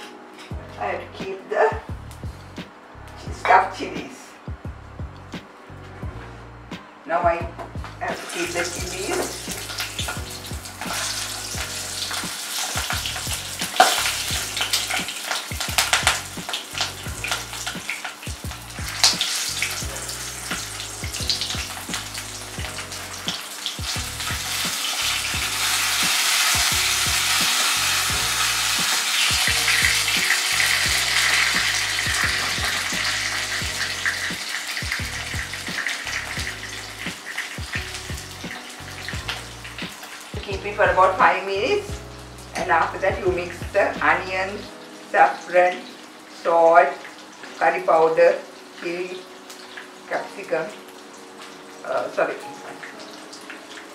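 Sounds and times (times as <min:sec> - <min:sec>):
food sizzling in hot oil: 0:07.7 - 0:53.9.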